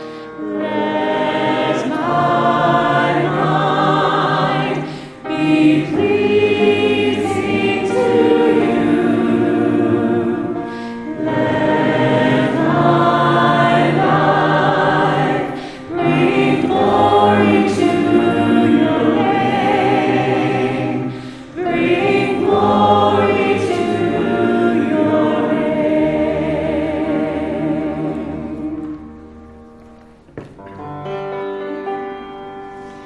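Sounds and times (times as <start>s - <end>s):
mixed choir singing: 0.0s - 29.7s.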